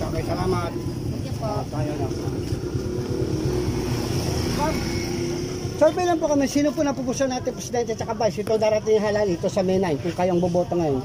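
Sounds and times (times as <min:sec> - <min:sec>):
street market rumble: 0:00.0 - 0:11.0.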